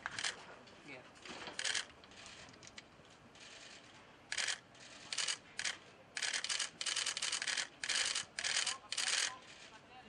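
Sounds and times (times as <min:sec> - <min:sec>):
rapid high clicking bursts: 0:03.4 - 0:09.8.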